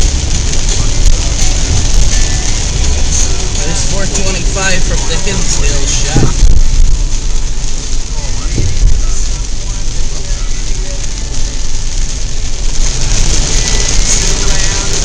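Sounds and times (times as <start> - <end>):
heavy rain on car windshield: 0.0 - 15.0
tyre and road rumble: 0.0 - 15.0.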